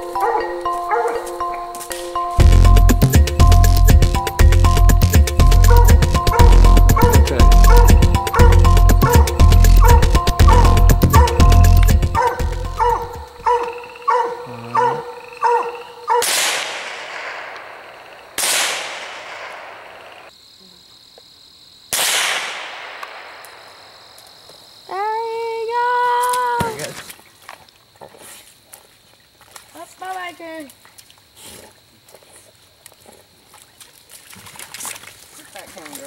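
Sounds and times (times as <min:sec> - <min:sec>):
music: 0:00.0 - 0:13.4
coonhound bawling: 0:05.5 - 0:15.8
rifle shots with echo: 0:16.2 - 0:20.1, 0:21.9 - 0:23.9.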